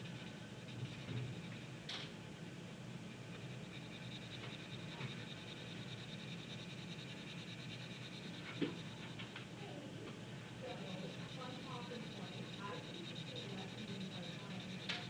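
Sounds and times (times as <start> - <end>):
blending stump rubbing paper: 10.6 - 15.0.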